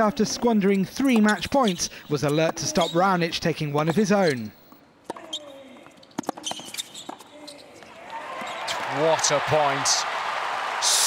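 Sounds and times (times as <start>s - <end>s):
crowd cheering: 7.9s - 11.0s.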